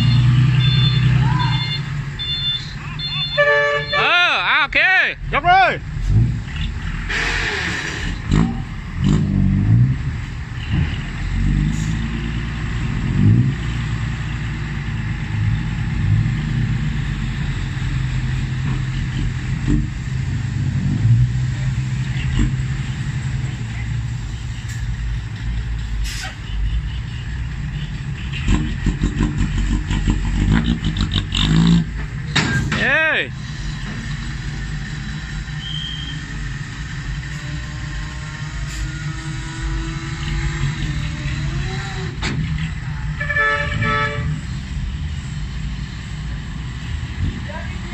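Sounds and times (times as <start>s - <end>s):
diesel truck engine running: 0.0s - 47.9s.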